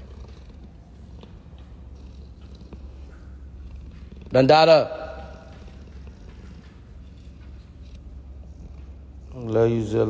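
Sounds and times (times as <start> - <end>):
dog breathing with low rumble: 0.0 - 10.0.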